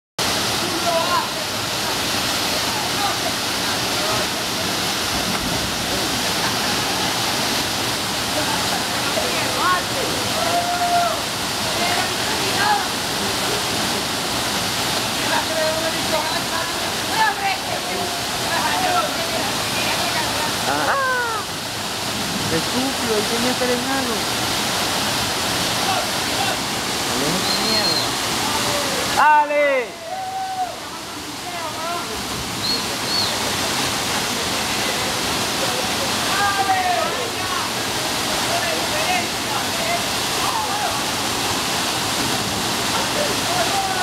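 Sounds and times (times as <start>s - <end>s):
waterfall rushing: 0.2s - 44.0s
person crying out: 20.7s - 21.5s.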